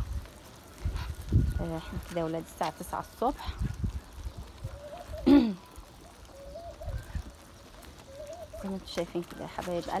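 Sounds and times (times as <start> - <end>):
ducks scuffling and pecking: 0.0 - 10.0.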